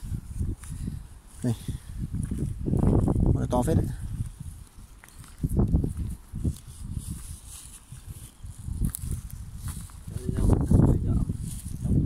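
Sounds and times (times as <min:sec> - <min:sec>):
low rumbles on microphone: 0:00.0 - 0:07.4, 0:08.0 - 0:12.0
flip-flop footsteps on gravel: 0:00.2 - 0:12.0.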